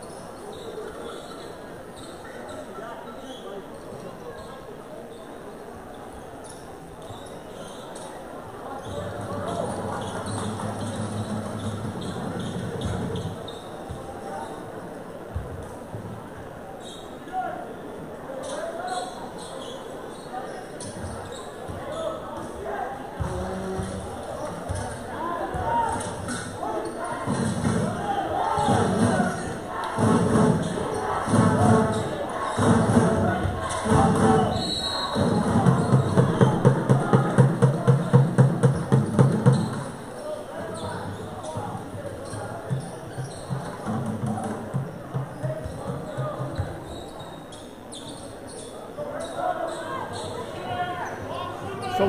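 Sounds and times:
crowd chatter: 0.0 - 52.0.

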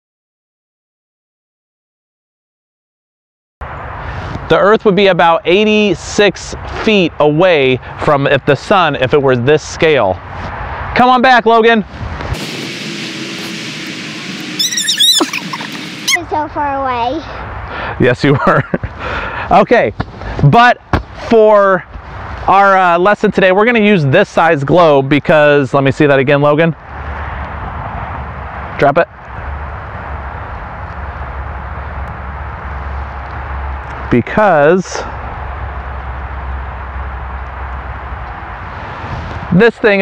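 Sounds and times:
steady outdoor hiss: 3.6 - 40.0
low rumble: 11.8 - 16.6
high-pitched chirping call: 14.4 - 16.2.

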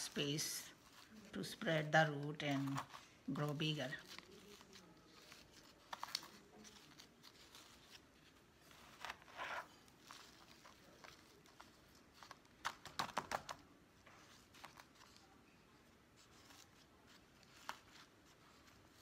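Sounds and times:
potting mix rustling: 0.0 - 12.6.

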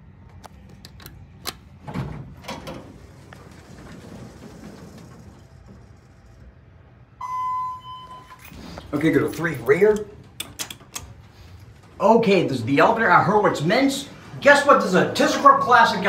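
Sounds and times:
elevator doors sliding open: 0.9 - 16.0
elevator clicks: 9.3 - 11.9.

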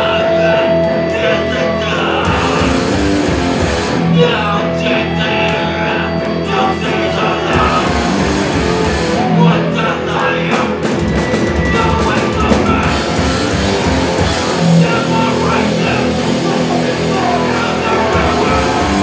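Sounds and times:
drum kit: 0.0 - 4.6, 7.4 - 19.0
distorted electric guitars: 0.0 - 19.0.

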